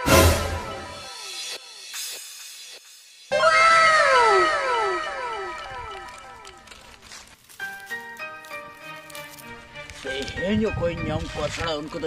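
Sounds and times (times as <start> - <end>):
comic downward sliding call: 3.3 - 6.4.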